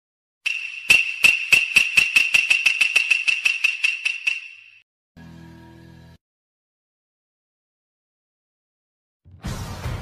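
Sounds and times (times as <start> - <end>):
high ringing tone: 0.5 - 4.8
rapid sharp clicks: 0.5 - 4.8.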